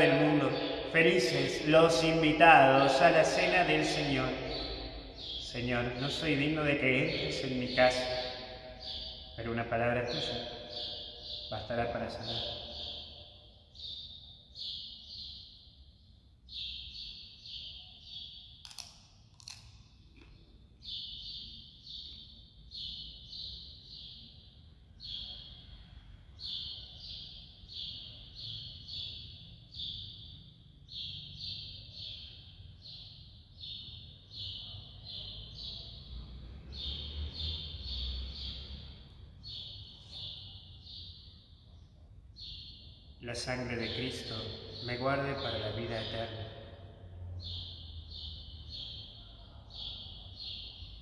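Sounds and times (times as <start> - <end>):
bird chirping: 0.0 - 51.0
sharp clicks: 18.6 - 20.3.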